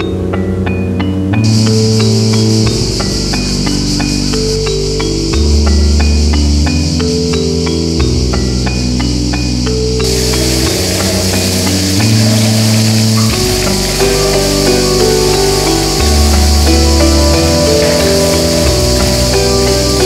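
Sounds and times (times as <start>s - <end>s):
cicadas buzzing: 0.0s - 20.0s
slow synth music with ticking beat: 0.0s - 20.0s.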